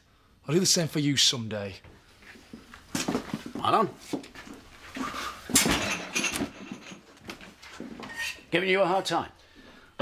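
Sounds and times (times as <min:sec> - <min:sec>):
kitchen bang and clatter: 0:05.5 - 0:07.1.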